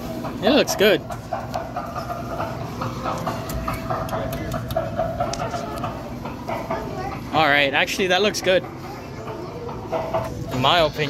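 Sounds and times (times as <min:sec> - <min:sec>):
distant voices: 0:00.0 - 0:11.0.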